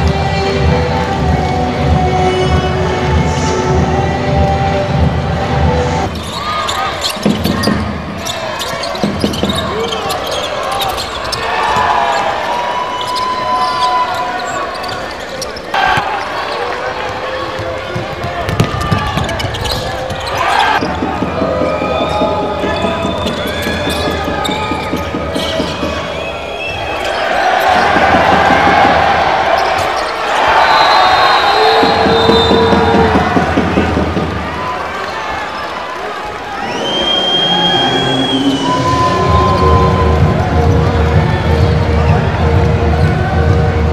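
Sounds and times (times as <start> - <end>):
crowd noise: 0.0 - 43.9
voices in a large hall: 0.0 - 43.9
shoes squeaking: 6.1 - 33.9
basketball bouncing on hardwood: 17.9 - 26.0.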